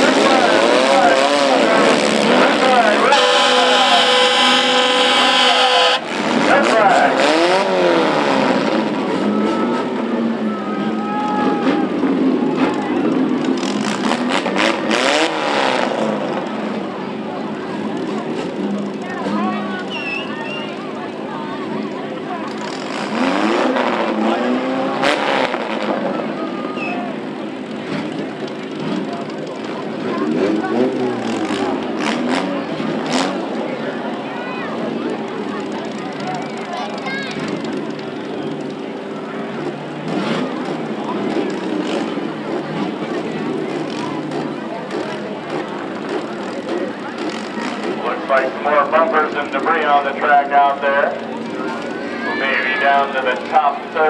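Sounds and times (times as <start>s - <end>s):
car engines revving: 0.0s - 54.0s
crowd voices: 0.0s - 54.0s.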